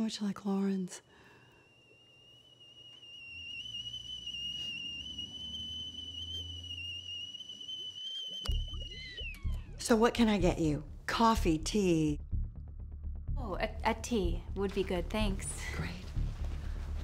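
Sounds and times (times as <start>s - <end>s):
high steady whistle-like tone: 0.9s - 10.4s
low pulsing beat: 8.5s - 17.0s.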